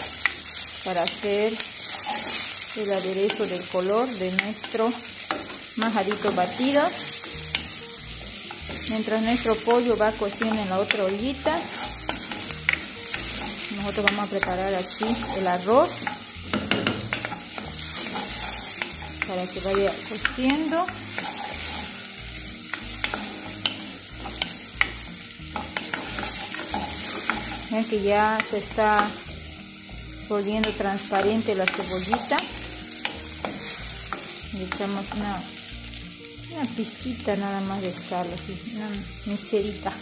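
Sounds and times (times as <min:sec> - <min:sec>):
onions sizzling in oil: 0:00.0 - 0:40.0.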